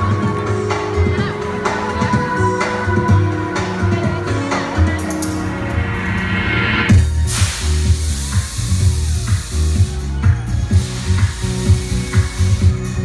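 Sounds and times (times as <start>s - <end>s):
live pop music through pa: 0.0s - 13.0s
hiss: 7.2s - 9.9s, 10.7s - 12.8s.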